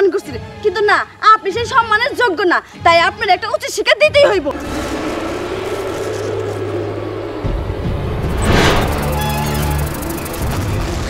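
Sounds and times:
deep rumble: 0:04.4 - 0:11.0
rising and falling whoosh: 0:04.5 - 0:10.7
low drone: 0:04.5 - 0:11.0.

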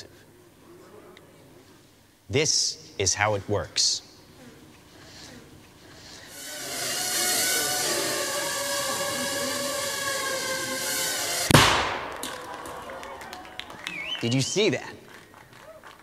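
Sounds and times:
drone whirring: 0:05.0 - 0:12.2
explosive bang: 0:11.4 - 0:12.3.

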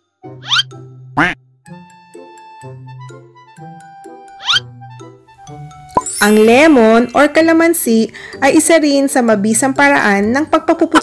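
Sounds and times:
background music: 0:00.0 - 0:11.0
cartoon duck quack: 0:00.4 - 0:01.4, 0:04.4 - 0:04.6.

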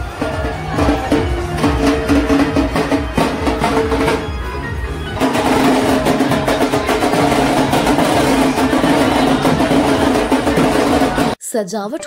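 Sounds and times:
drums beating fast rhythm: 0:00.0 - 0:11.4
loud music with held notes: 0:00.0 - 0:11.4.

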